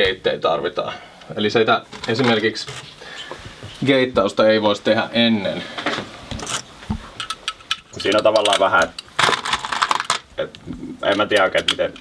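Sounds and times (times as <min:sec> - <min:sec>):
effects pedals clicking and knocking: 0:11.0 - 0:12.0.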